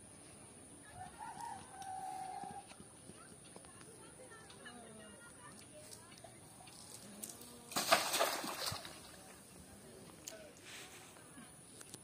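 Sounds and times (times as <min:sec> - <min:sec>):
rooster crowing: 0:01.0 - 0:02.6.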